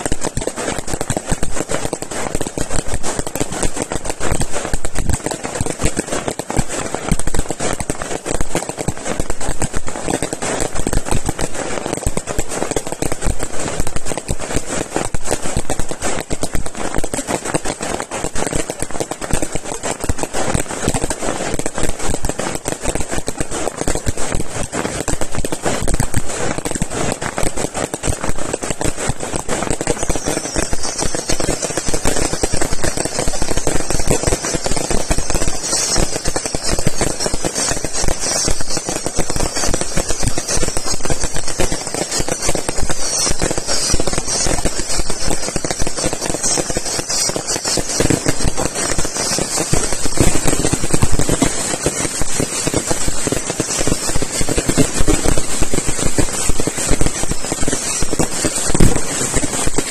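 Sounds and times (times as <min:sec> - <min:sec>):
falling firework whistles: 0:00.0 - 0:59.9
fireworks bangs and crackling: 0:00.0 - 0:59.9.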